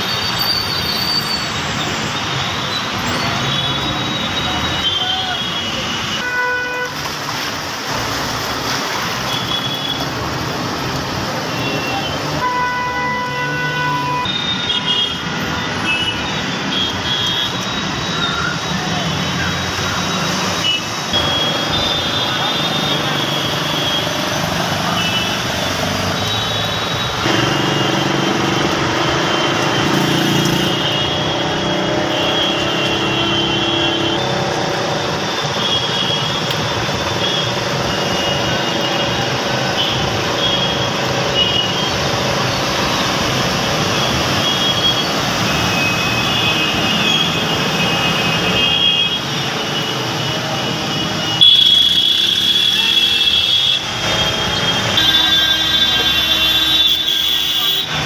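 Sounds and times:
traffic and water noise: 0:00.0 - 0:58.0
car engines: 0:07.0 - 0:12.5, 0:15.2 - 0:51.4.

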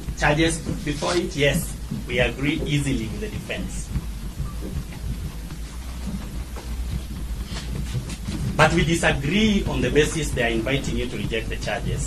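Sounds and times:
low rumble: 0:00.0 - 0:12.0
steady hiss: 0:00.0 - 0:12.0.

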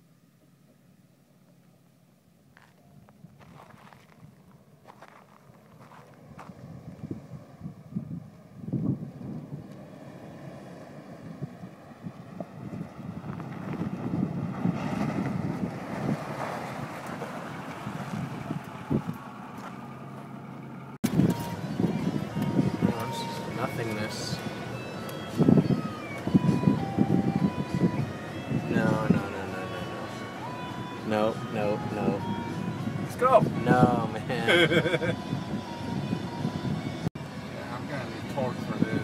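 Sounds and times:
truck driving on sand: 0:02.5 - 0:39.0
wind on microphone: 0:06.2 - 0:09.7, 0:11.2 - 0:17.0, 0:17.8 - 0:19.3, 0:21.0 - 0:23.5, 0:25.3 - 0:29.3, 0:31.9 - 0:37.1.

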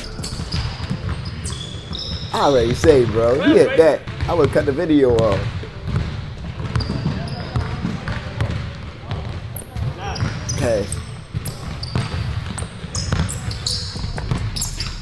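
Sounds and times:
shoe squeaks: 0:00.0 - 0:03.8, 0:06.7 - 0:07.8, 0:09.6 - 0:15.0
basketball dribbling on court: 0:00.1 - 0:03.4, 0:04.0 - 0:15.0.

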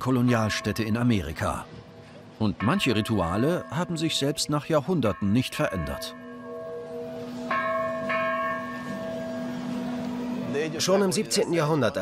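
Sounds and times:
church bell ringing: 0:00.0 - 0:01.4, 0:02.6 - 0:12.0.

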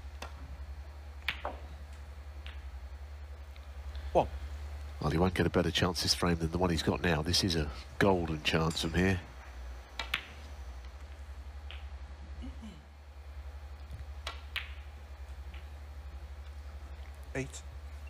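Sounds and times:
low steady hum: 0:00.0 - 0:18.0
snooker balls clicking: 0:00.1 - 0:00.4, 0:01.2 - 0:02.8, 0:08.2 - 0:12.0, 0:13.8 - 0:15.8.

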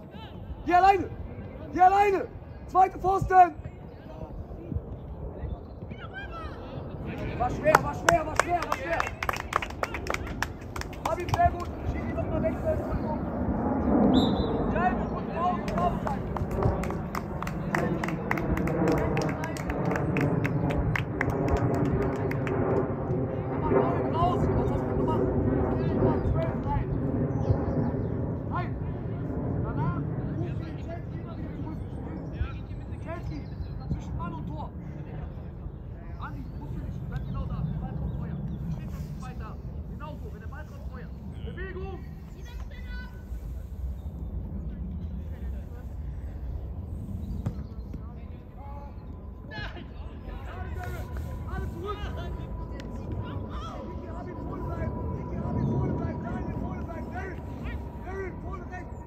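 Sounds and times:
low rumble: 0:43.2 - 0:59.0.

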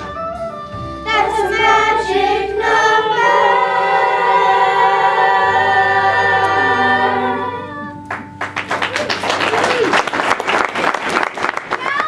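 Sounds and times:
children's chorus singing: 0:01.1 - 0:07.9.

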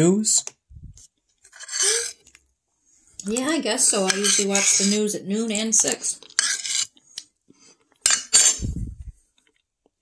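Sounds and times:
metal spoon scraping plate: 0:01.5 - 0:02.2, 0:03.3 - 0:05.1, 0:05.8 - 0:06.9, 0:08.1 - 0:08.8.

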